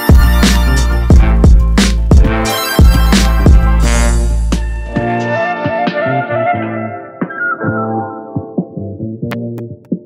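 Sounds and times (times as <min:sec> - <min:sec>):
hip-hop beat: 0:00.0 - 0:10.0
wavering melodic lead: 0:02.3 - 0:08.6.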